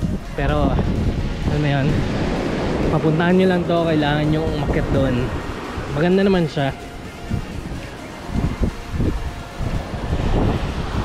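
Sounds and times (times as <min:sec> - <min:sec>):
wind buffeting microphone: 0:00.0 - 0:11.0
small waves breaking on beach: 0:00.2 - 0:11.0.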